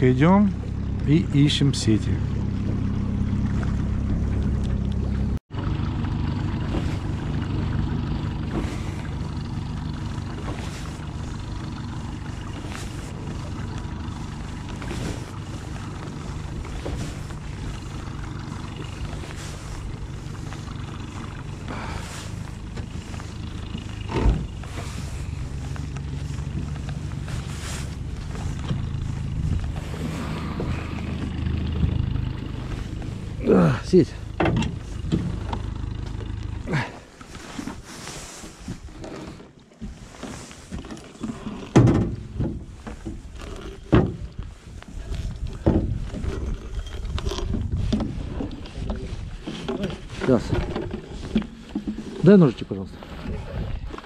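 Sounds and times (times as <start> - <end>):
outboard motor running: 0.0 - 54.0.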